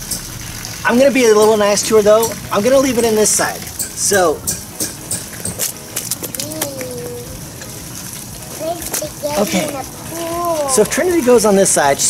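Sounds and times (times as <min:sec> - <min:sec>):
handling clicks and rustles: 0:01.4 - 0:12.0.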